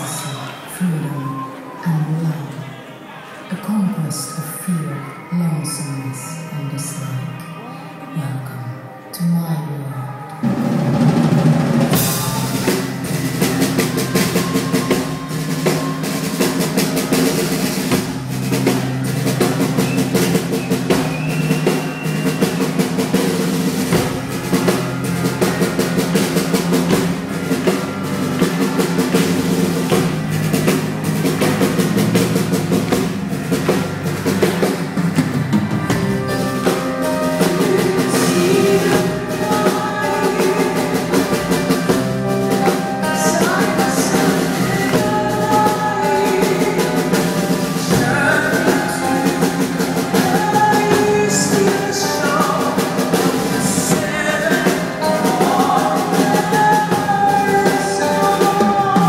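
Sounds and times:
metal band playing: 10.3 - 59.0
heavy drum kit: 10.4 - 59.0.

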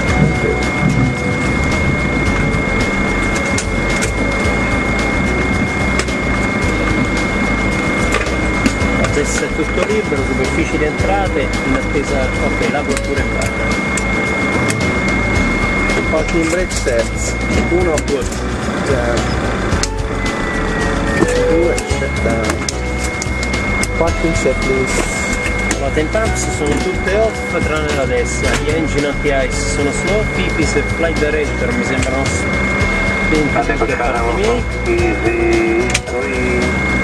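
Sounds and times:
airliner engines high whine: 0.0 - 37.0
dense low rumble: 0.0 - 37.0.

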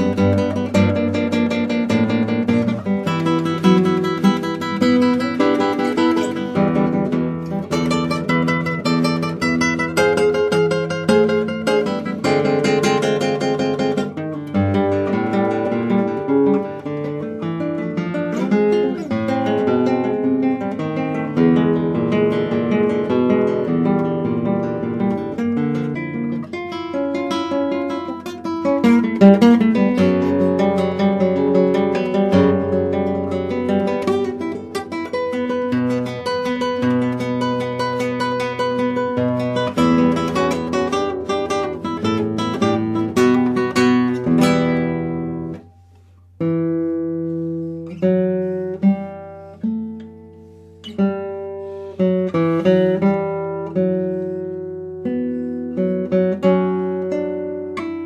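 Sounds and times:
solo acoustic guitar: 0.0 - 58.0.

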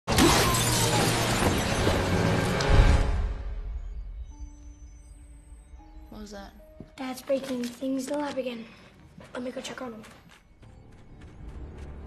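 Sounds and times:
glass tank shattering: 0.1 - 2.4.

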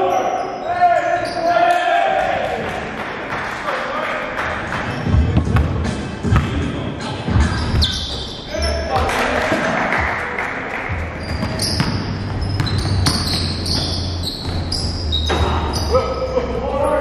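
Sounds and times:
sneaker squeaks: 0.0 - 1.8, 4.8 - 5.5, 7.3 - 9.1, 11.0 - 17.0
players' voices: 0.0 - 17.0
basketball bouncing on wooden floor: 11.3 - 15.8.

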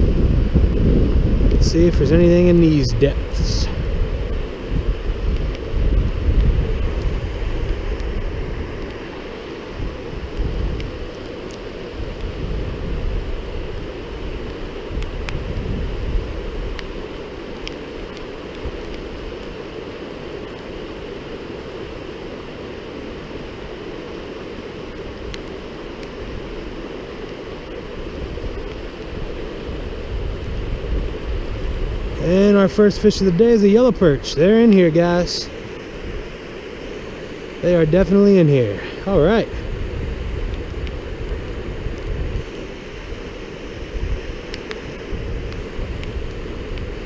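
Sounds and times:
wind buffeting microphone: 0.0 - 20.4, 27.5 - 47.0
stream running through rapids: 0.0 - 47.0
faint ticks: 24.9 - 26.2.

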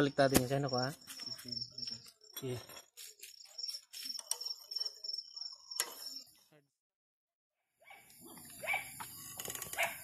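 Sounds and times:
crickets chirring: 0.0 - 6.4, 7.9 - 10.0.

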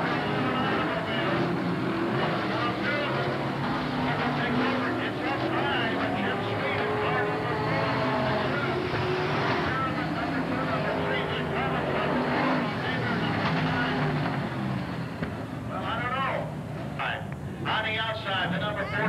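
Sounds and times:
race car engines: 0.0 - 19.0
voices: 0.0 - 19.0.

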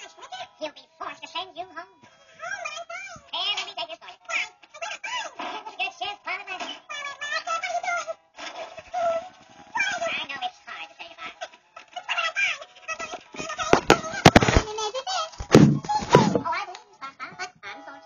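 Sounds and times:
loud thud: 15.4 - 16.4.

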